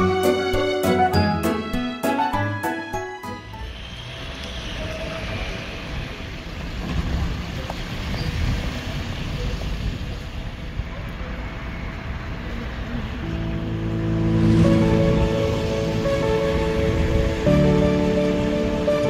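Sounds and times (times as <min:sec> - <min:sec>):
music of held notes: 0:00.0 - 0:03.6, 0:13.2 - 0:19.0
low outdoor rumble: 0:08.7 - 0:19.0.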